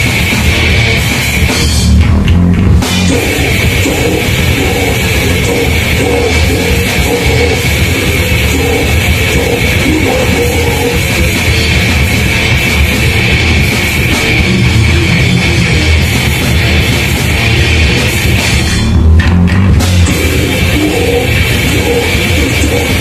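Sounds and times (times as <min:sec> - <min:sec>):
heavy metal band playing live: 0:00.0 - 0:23.0.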